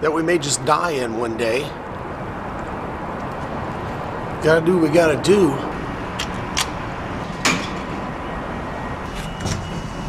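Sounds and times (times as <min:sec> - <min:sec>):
low rumbling garage noise: 0:00.0 - 0:10.0.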